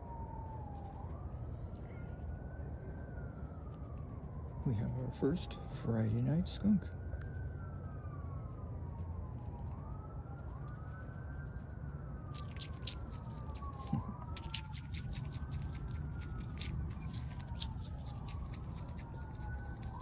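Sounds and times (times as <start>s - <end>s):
emergency siren wailing: 0.0s - 20.0s
skunk chewing crisp clicks: 7.1s - 8.0s, 8.9s - 20.0s.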